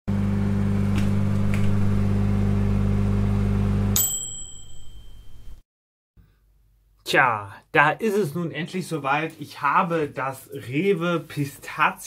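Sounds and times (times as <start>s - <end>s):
bell-like ding: 4.0s - 5.6s.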